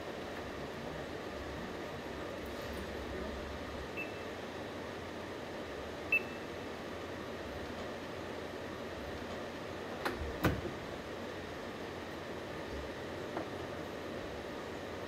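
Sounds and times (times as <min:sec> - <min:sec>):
factory hum and hiss: 0:00.0 - 0:15.0.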